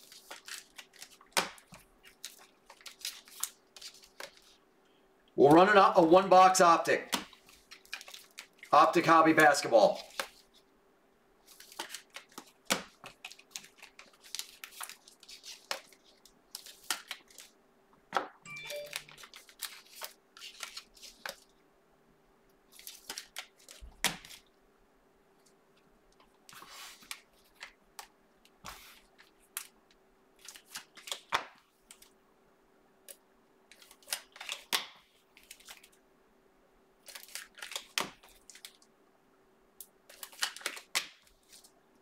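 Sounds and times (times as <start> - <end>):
plastic sleeves crinkling: 0.0 - 4.6, 7.3 - 10.6, 11.4 - 17.6, 18.7 - 21.5, 37.0 - 38.8.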